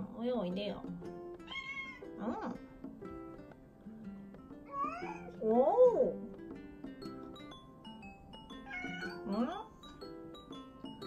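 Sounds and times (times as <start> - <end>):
soft background music: 0.0 - 11.0
cat meowing: 1.4 - 2.6, 4.7 - 5.4, 8.6 - 9.6.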